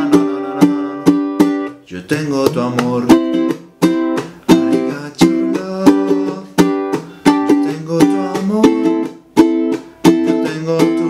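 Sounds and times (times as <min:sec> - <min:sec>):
ukulele strumming: 0:00.0 - 0:11.0.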